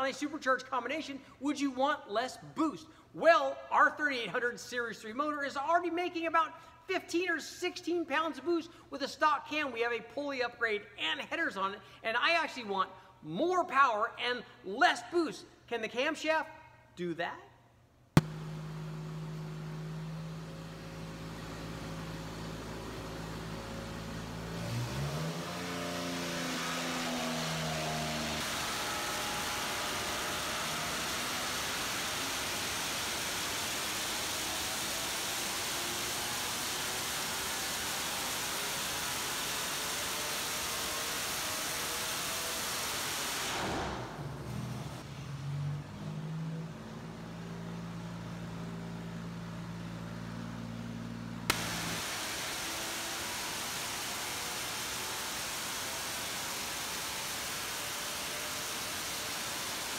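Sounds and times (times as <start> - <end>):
engine idling and revving: 18.2 - 59.9
steady hiss: 51.5 - 59.9.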